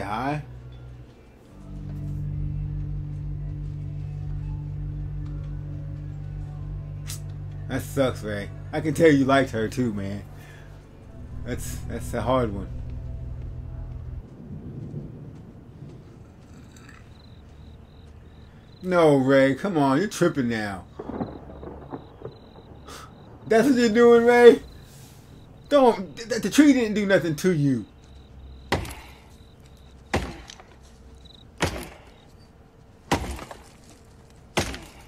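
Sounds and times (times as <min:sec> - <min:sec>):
low outdoor rumble: 0:00.0 - 0:35.0
blade chopping into tree trunk: 0:28.7 - 0:29.1, 0:30.1 - 0:30.8, 0:31.6 - 0:32.0, 0:33.1 - 0:35.0.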